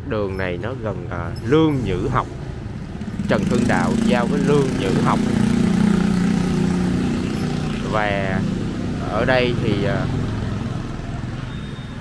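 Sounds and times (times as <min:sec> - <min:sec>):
motorbike engines passing: 0:00.0 - 0:12.0.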